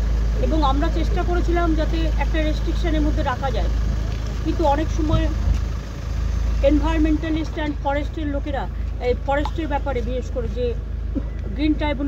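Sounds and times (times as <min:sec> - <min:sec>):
steady low rumble: 0:00.0 - 0:12.0
woman speaking: 0:00.4 - 0:03.7, 0:04.5 - 0:05.4, 0:06.6 - 0:10.8, 0:11.5 - 0:12.0.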